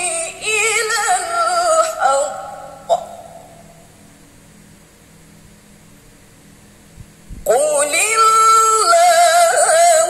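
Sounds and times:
woman reciting melodically: 0:00.0 - 0:03.5, 0:07.5 - 0:10.0
electrical hum: 0:00.0 - 0:10.0.

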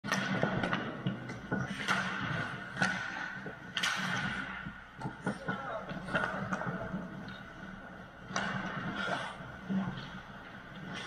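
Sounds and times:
hockey sticks and puck clacking: 0:00.1 - 0:11.0.

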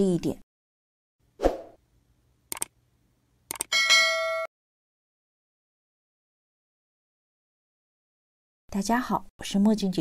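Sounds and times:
mouse clicks: 0:02.5 - 0:02.7, 0:03.5 - 0:03.7
bright bell-like chime: 0:03.7 - 0:04.5.

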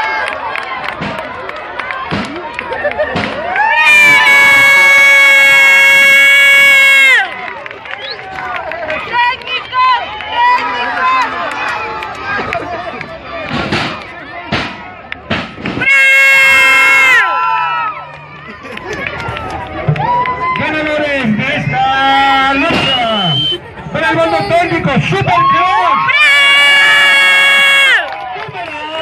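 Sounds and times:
crowd shouting: 0:00.0 - 0:29.0
sharp slaps or claps: 0:02.1 - 0:03.5
air horn blasts: 0:15.8 - 0:17.1.

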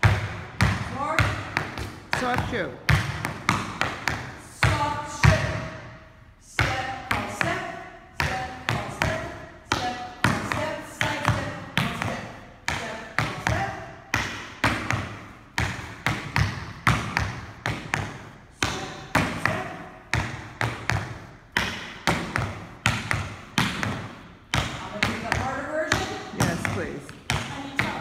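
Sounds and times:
tap shoes striking floor: 0:08.7 - 0:28.0.

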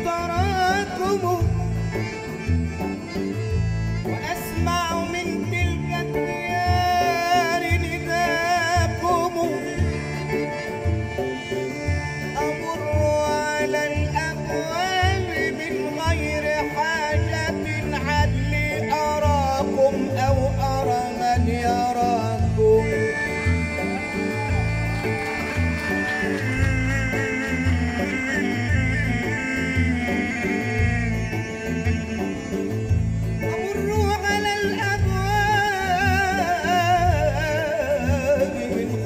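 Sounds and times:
bass: 0:00.0 - 0:39.0
man singing ornamented melody: 0:00.0 - 0:39.0
percussion steady beat: 0:22.4 - 0:29.8.

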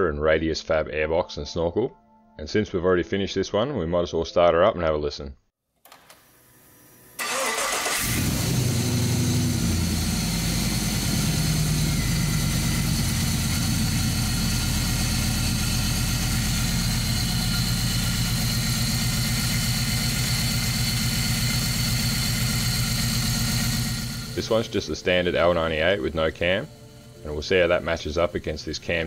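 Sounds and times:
car engine starting and idling: 0:07.2 - 0:29.0.

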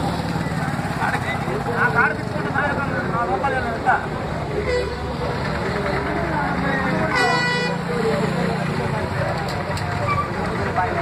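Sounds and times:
people chattering: 0:00.0 - 0:11.0
vehicle horn: 0:04.6 - 0:05.0, 0:07.1 - 0:07.9.

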